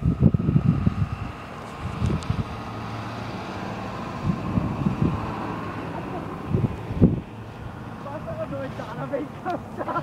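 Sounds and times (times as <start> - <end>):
wind gusting on microphone: 0.0 - 9.7
road traffic going by: 0.0 - 10.0.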